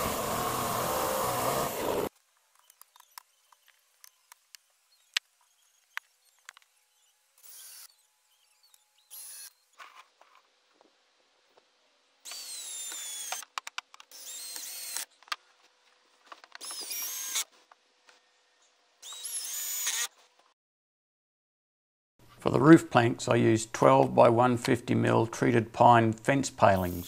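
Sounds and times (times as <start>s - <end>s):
cordless drill driving screws: 0.0s - 2.1s, 8.7s - 9.5s, 12.3s - 13.5s, 14.1s - 15.1s, 16.6s - 17.5s, 19.0s - 20.1s.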